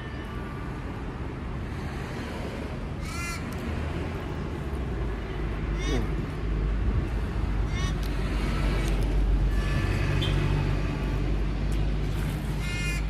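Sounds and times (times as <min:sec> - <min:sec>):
vehicle engine rumbling: 0:00.0 - 0:13.0.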